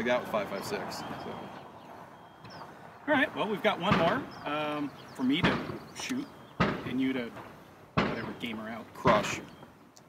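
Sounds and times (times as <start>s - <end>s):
faint outdoor background noise: 0.0s - 10.0s
faint high chirp: 1.0s - 2.8s.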